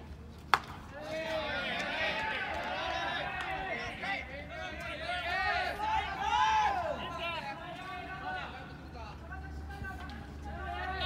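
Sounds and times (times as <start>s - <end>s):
baseball bat striking ball: 0.5s - 0.8s
players shouting: 0.9s - 11.0s.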